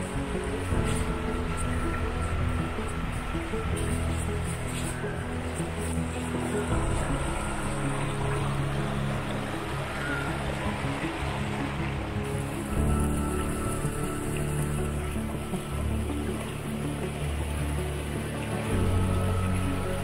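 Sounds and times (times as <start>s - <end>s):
ambient music with low chords: 0.0s - 20.0s.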